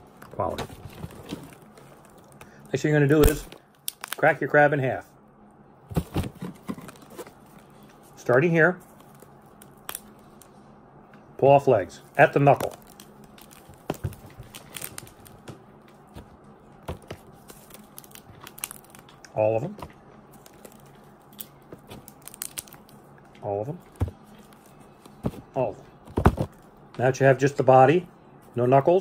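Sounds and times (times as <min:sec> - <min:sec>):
crab shell cracking: 0:20.5 - 0:23.0.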